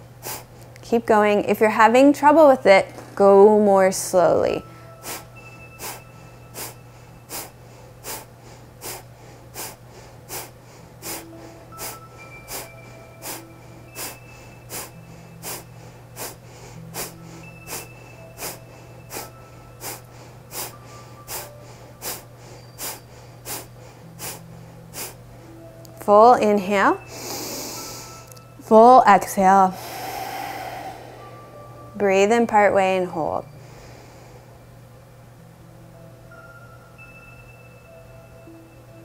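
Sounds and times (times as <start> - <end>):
forceful nasal exhales: 5.0 - 6.0, 6.6 - 20.7, 21.3 - 25.2, 27.1 - 28.2, 29.7 - 32.0.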